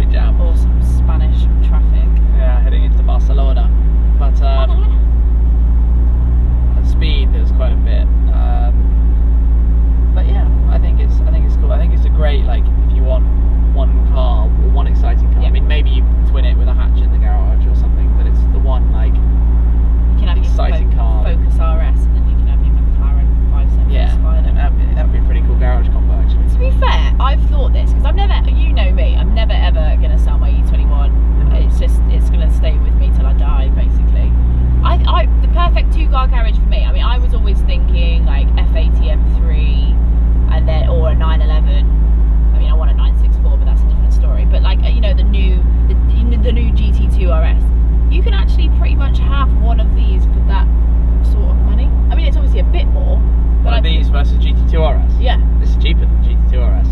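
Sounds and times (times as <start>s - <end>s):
man and woman talking: 0.0s - 5.0s, 6.8s - 8.8s, 10.2s - 19.2s, 20.2s - 39.9s, 40.5s - 41.8s, 42.6s - 50.6s, 51.2s - 56.9s
car engine low rumble: 0.0s - 56.9s.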